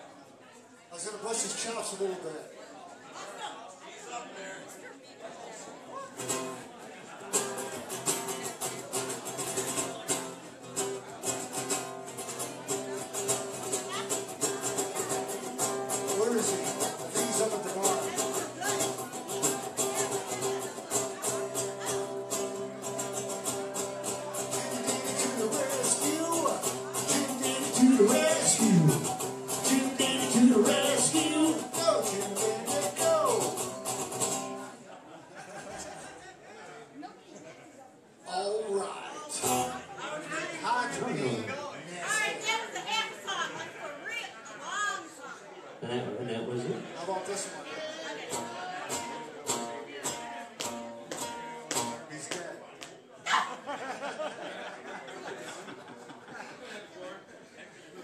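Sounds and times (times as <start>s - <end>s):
live band with strummed guitar: 6.1s - 34.9s, 39.3s - 40.0s, 48.2s - 52.4s.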